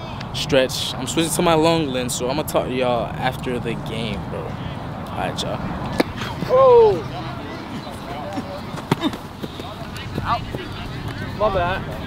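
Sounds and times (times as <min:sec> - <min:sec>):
voices calling out: 0:04.3 - 0:12.0
crowd hubbub: 0:04.4 - 0:12.0.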